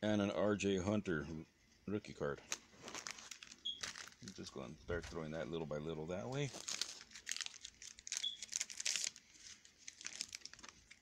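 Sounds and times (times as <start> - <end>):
wrapper crinkling and tearing: 2.5 - 4.5, 6.3 - 11.0.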